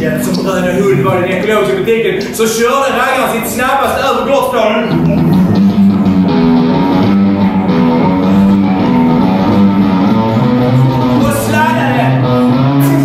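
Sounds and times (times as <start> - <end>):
amplified guitar chords: 4.8 - 13.0.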